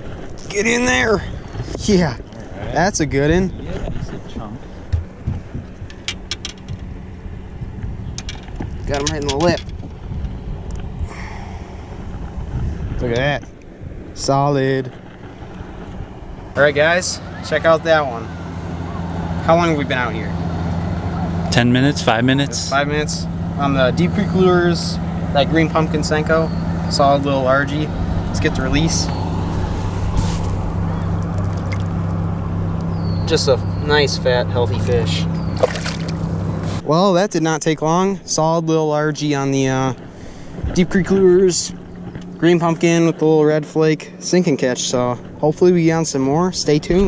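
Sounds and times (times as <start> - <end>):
wind noise on microphone: 0.0 - 16.6
boat motor humming: 0.0 - 36.8, 39.5 - 47.0
wind buffeting microphone: 0.0 - 36.9, 39.2 - 44.2.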